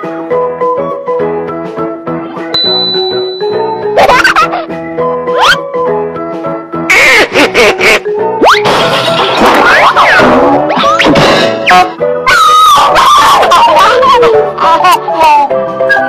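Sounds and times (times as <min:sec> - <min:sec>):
cartoon music: 0:02.6 - 0:05.8, 0:06.9 - 0:16.0.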